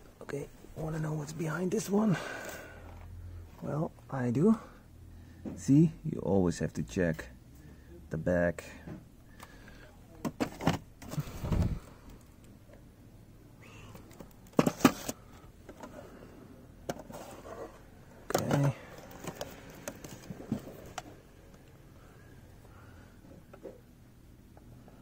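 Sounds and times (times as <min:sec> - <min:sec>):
boxes scraping and clicking on shelf: 0:10.3 - 0:11.8, 0:14.0 - 0:16.2, 0:16.8 - 0:21.2.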